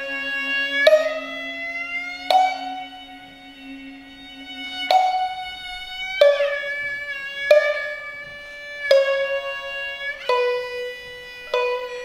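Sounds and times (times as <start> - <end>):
bowed string holding a note: 0.0 - 12.0
plucked shamisen notes: 0.0 - 12.0.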